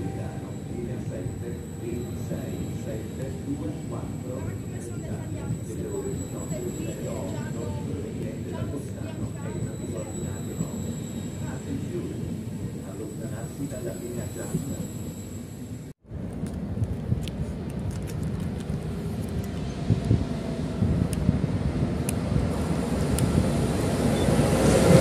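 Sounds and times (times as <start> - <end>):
people chattering: 0.0 - 14.9
train rumbling along platform: 0.0 - 25.0.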